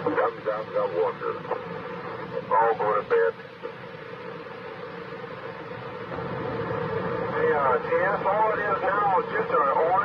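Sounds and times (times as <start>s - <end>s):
man's voice on radio: 0.0s - 1.6s, 2.3s - 3.5s, 7.3s - 10.0s
radio hiss and hum: 0.0s - 10.0s.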